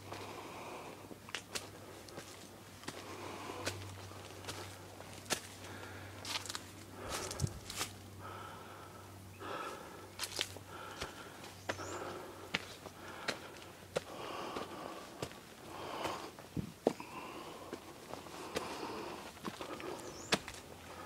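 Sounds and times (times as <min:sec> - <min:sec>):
hiker breathing: 0:00.0 - 0:21.0
footsteps on dirt and stone: 0:01.2 - 0:08.0, 0:10.2 - 0:21.0.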